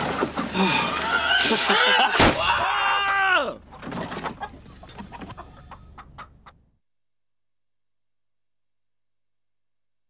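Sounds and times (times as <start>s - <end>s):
person crying out: 1.4s - 3.6s.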